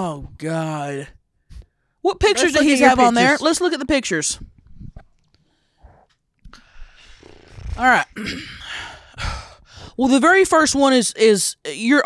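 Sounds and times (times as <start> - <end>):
woman clearing throat: 8.2 - 8.7.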